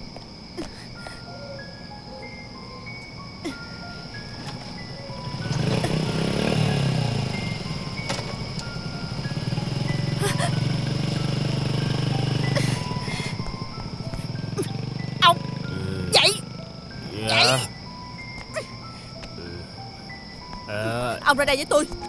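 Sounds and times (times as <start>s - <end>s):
small motorbike engine running: 4.3s - 17.6s.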